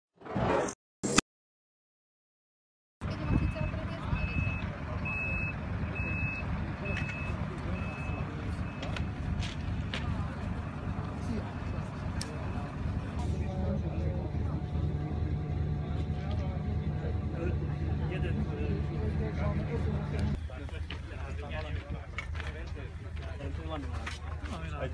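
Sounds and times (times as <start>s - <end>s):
reversing alarm beeping: 3.4s - 9.0s, 11.4s - 13.0s
steady low rumble: 7.5s - 20.4s.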